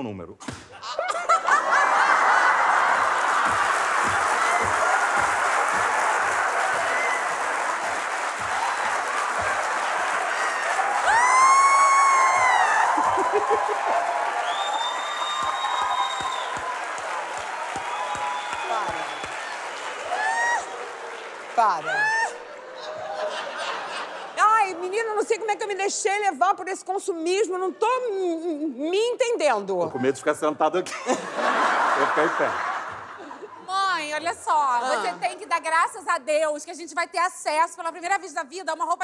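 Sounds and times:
studio audience applauding: 0:01.6 - 0:24.9, 0:31.2 - 0:33.0
loud voiced whoop: 0:10.4 - 0:16.7, 0:20.0 - 0:20.8, 0:21.9 - 0:22.4.

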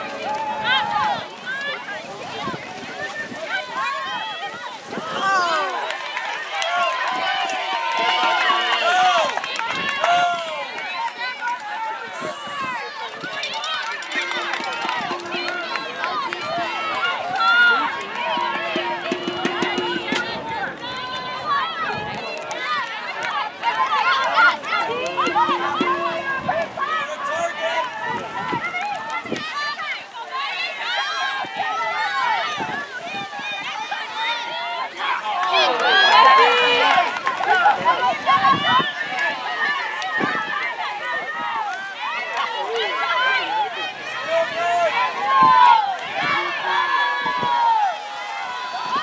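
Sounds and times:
crowd shouting: 0:00.0 - 0:49.0.

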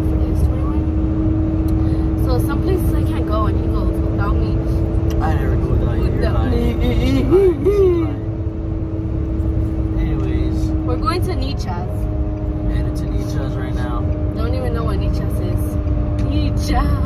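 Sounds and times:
road and engine rumble: 0:00.0 - 0:17.0
steady hum: 0:00.0 - 0:17.0.

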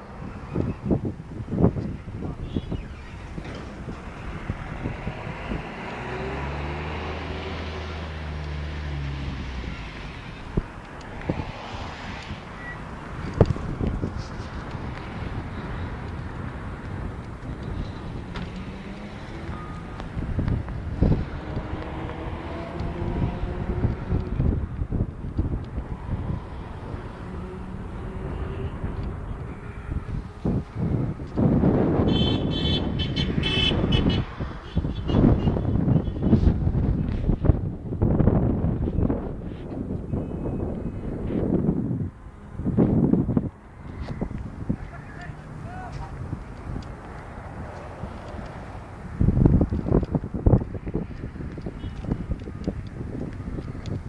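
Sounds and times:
vehicles: 0:00.0 - 0:54.0.

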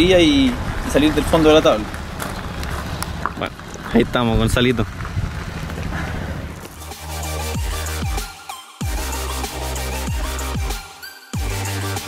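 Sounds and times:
low rumbling noise: 0:00.0 - 0:06.9
electronic music with heavy bass: 0:06.7 - 0:12.0.

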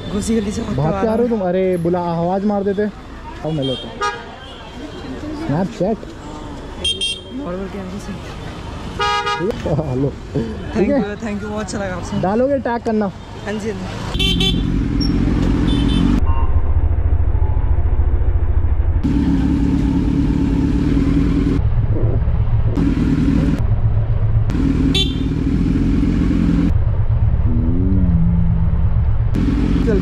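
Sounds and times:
motorcycle engine rumbling: 0:14.1 - 0:30.0.

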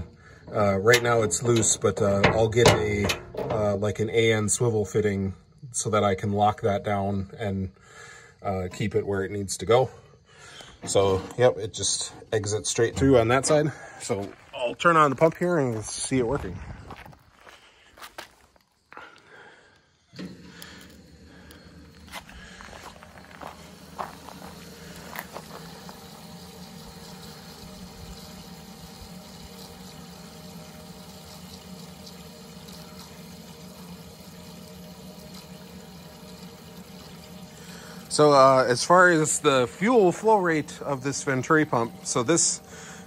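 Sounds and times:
electric fuel pump humming: 0:00.0 - 0:06.9, 0:19.6 - 0:43.0
fuel churning and splashing: 0:20.2 - 0:43.0.

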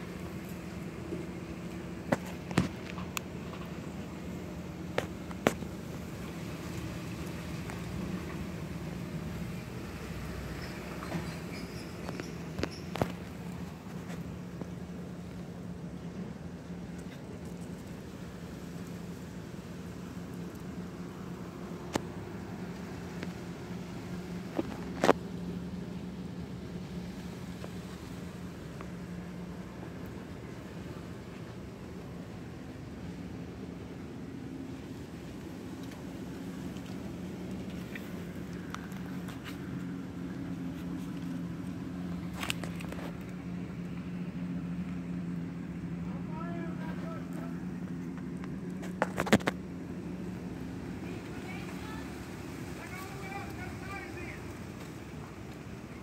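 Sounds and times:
low motor hum: 0:00.0 - 0:56.0.

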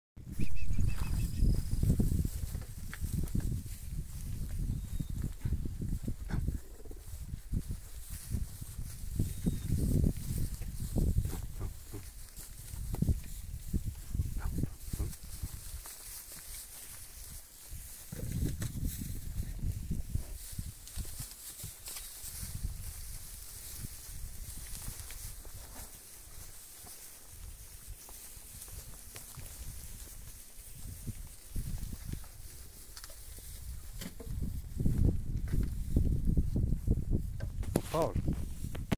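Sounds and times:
cattle shuffling on straw: 0:00.8 - 0:36.7.

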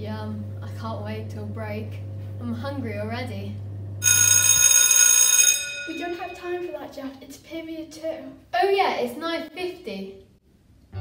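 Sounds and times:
electric school bell ringing: 0:04.0 - 0:06.8.

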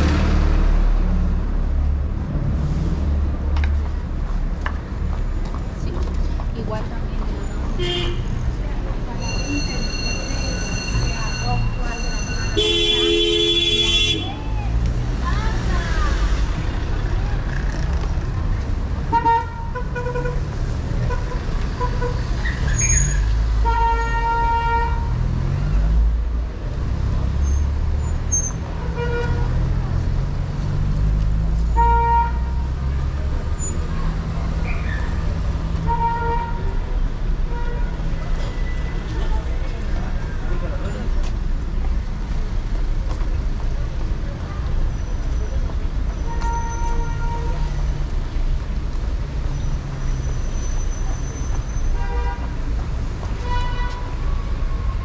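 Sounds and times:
car engines passing: 0:00.0 - 0:55.0
car horn toots: 0:12.4 - 0:14.3.

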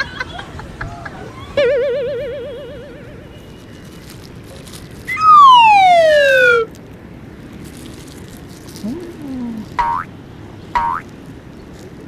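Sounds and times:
descending cartoon whistle: 0:05.1 - 0:06.7.

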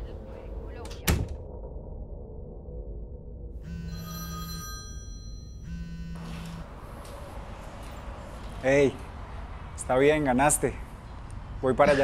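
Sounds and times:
phone ringing: 0:03.6 - 0:06.7.

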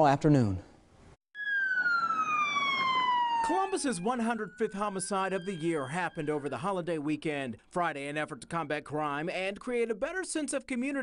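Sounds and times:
police siren wail: 0:01.4 - 0:07.3.

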